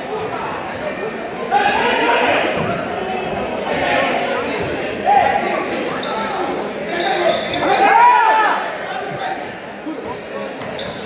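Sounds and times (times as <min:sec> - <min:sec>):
spectators chattering: 0:00.0 - 0:11.0
shoes squeaking on hardwood floor: 0:06.0 - 0:07.9, 0:10.1 - 0:11.0.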